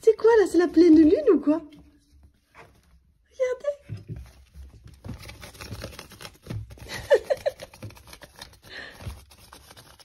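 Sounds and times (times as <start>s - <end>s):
kittens scratching and rustling: 3.9s - 10.0s.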